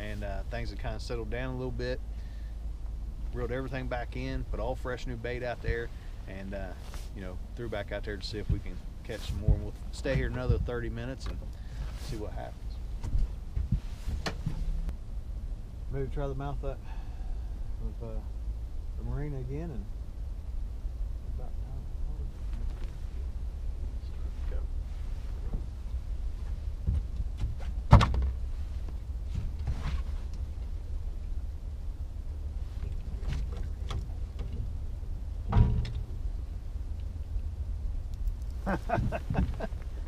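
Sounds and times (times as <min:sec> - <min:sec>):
steady low rumble: 0:00.0 - 0:40.0.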